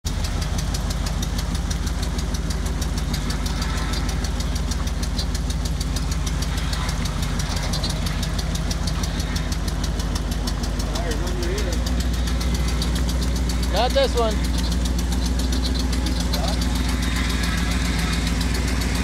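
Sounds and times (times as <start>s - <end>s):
truck engine running at low revs: 0.0s - 19.0s.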